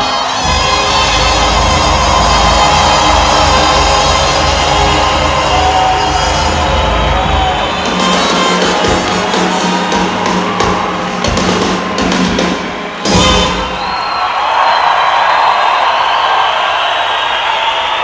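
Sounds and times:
brass band playing: 0:00.0 - 0:14.0
audience cheering and applauding: 0:00.0 - 0:18.0
high whistle: 0:13.0 - 0:15.0.

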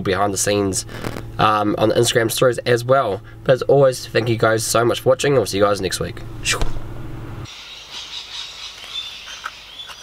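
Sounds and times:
high-pitched animal chirping: 0:07.5 - 0:10.0.

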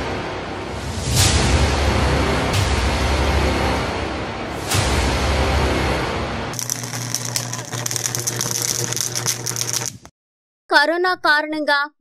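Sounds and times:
electrical arcing crackle: 0:06.6 - 0:10.1.

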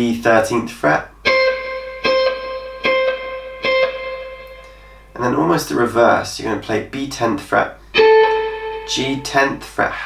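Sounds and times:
electric guitar high note: 0:01.2 - 0:05.0, 0:08.0 - 0:09.4.

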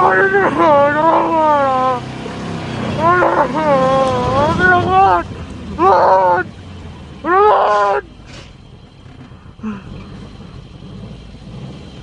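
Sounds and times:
person calling out wavering cries: 0:00.0 - 0:02.1, 0:02.9 - 0:06.5, 0:07.2 - 0:08.1.

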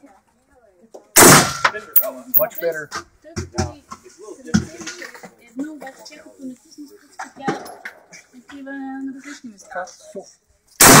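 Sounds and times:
loud gunshot: 0:01.2 - 0:01.7, 0:10.8 - 0:11.0.

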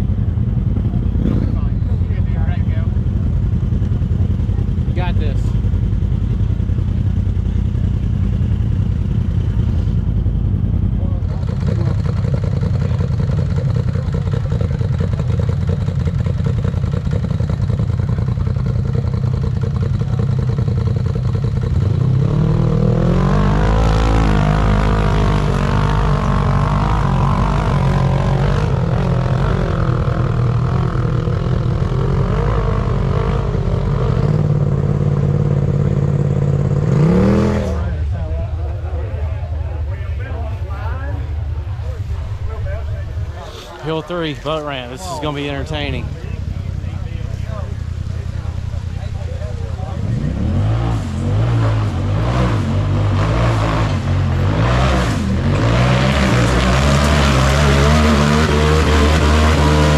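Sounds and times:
buggy engine revving: 0:00.0 - 0:59.9
low engine rumble: 0:00.0 - 0:59.9.

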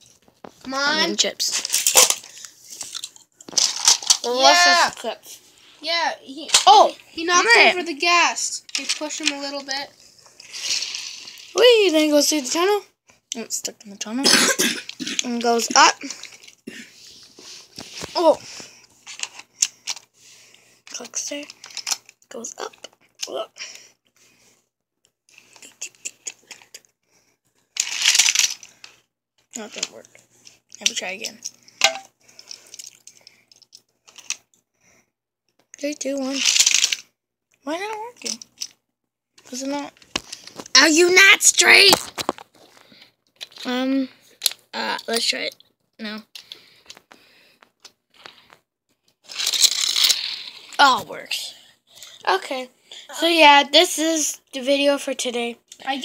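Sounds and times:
plastic track pieces clicking: 0:01.6 - 0:04.3, 0:21.4 - 0:22.2, 0:27.8 - 0:29.0, 0:30.8 - 0:34.5, 0:36.2 - 0:37.1, 0:49.3 - 0:50.8
faint handling clicks and rustling: 0:08.6 - 0:11.6, 0:17.2 - 0:23.4, 0:27.8 - 0:34.6, 0:39.4 - 0:40.8, 0:42.0 - 0:50.8
plastic toy track clicks: 0:27.8 - 0:29.0, 0:36.2 - 0:37.0, 0:49.3 - 0:50.4.

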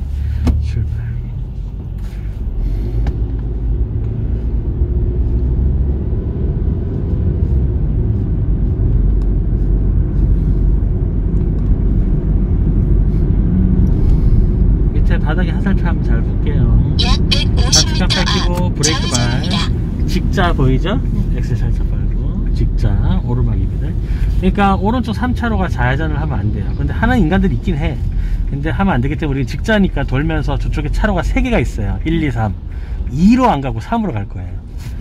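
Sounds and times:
car engine and road noise: 0:00.0 - 0:35.0
voices: 0:17.0 - 0:19.8.

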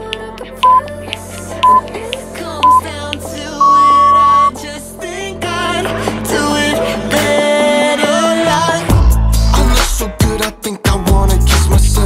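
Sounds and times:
background pop music: 0:00.0 - 0:12.0
interval timer beeping: 0:00.6 - 0:00.9, 0:01.6 - 0:01.9, 0:02.6 - 0:02.8, 0:03.6 - 0:04.5.

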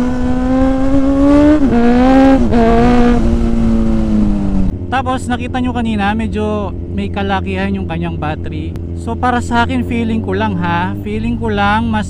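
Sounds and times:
motorcycle engine at high revs: 0:00.0 - 0:05.0.

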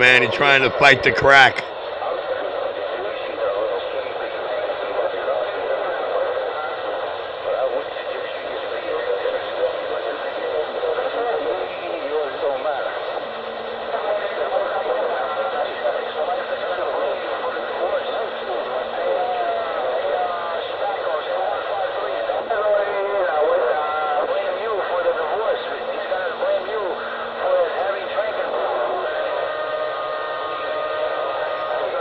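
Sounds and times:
man talking over audio line: 0:00.0 - 0:01.7.

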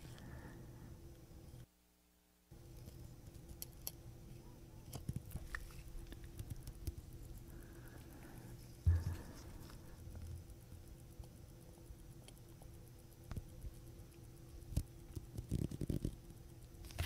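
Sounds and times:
soft low bump: 0:08.9 - 0:09.3
tweezers clicking and tapping: 0:09.1 - 0:16.8.

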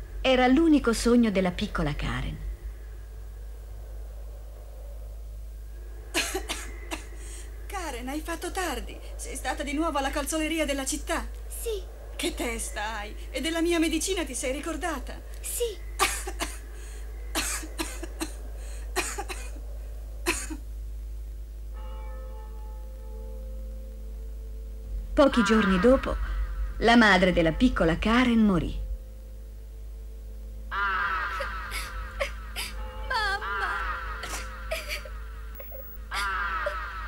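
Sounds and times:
woman coughing: 0:06.2 - 0:07.2, 0:16.0 - 0:16.7, 0:17.4 - 0:18.4, 0:19.0 - 0:19.6, 0:20.2 - 0:20.6, 0:31.7 - 0:36.3.

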